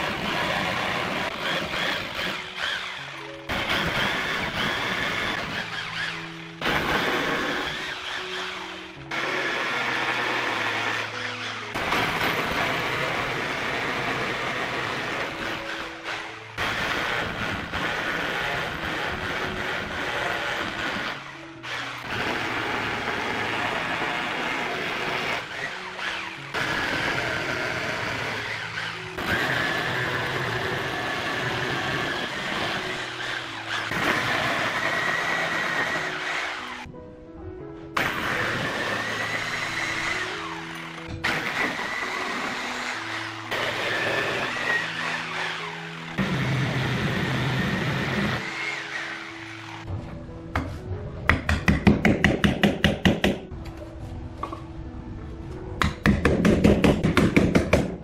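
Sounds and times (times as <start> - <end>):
hammer drill boring into concrete: 0.0 - 36.9, 38.0 - 49.9
background music: 0.0 - 58.0.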